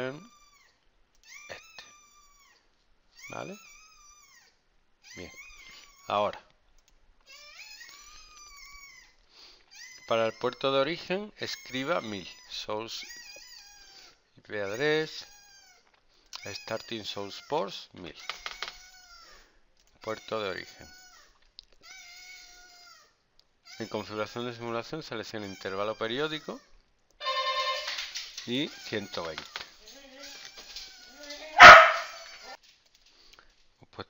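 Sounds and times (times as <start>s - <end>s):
faint high-pitched animal cry: 0.0s - 6.2s, 7.3s - 10.6s, 11.4s - 14.2s, 15.2s - 17.5s, 25.4s - 28.0s, 30.2s - 32.6s
animal high-pitched cry: 3.2s - 6.1s, 27.2s - 28.0s, 30.2s - 32.5s.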